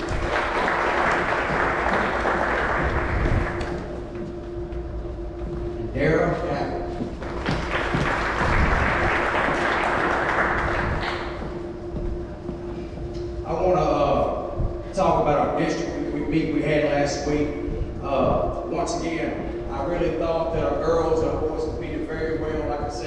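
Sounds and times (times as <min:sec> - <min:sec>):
audience applauding: 0:00.0 - 0:04.1, 0:07.2 - 0:11.6
person making an announcement: 0:05.7 - 0:07.2, 0:13.3 - 0:23.0.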